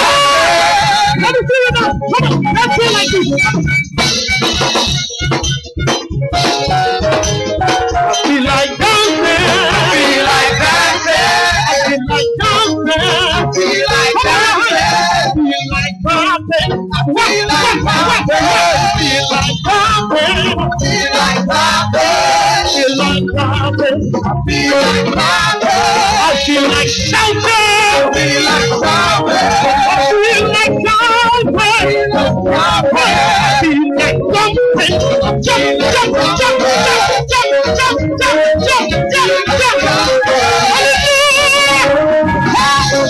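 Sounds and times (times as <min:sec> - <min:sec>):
gospel band playing: 0:00.0 - 0:43.0
person singing long notes: 0:08.3 - 0:43.0.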